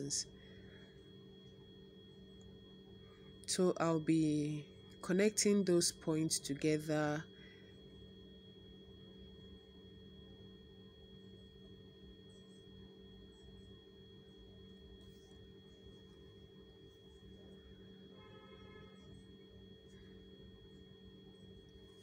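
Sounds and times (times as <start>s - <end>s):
faint steady hum: 0.0s - 22.0s.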